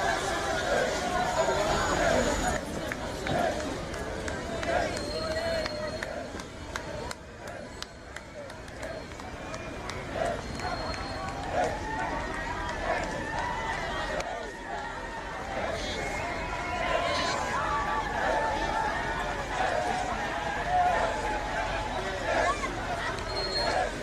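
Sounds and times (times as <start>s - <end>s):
crowd talking and calling out: 0.0s - 24.0s.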